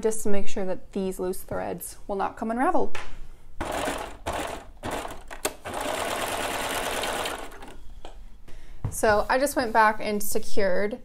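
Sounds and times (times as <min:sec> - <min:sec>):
serger stitching: 0:03.6 - 0:07.8.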